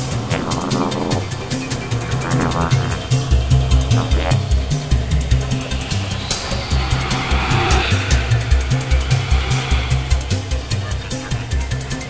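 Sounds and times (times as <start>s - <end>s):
fast ticking percussion: 0.0s - 12.0s
hissing synth sweep: 0.0s - 12.0s
pulsing synth bass: 0.0s - 12.0s.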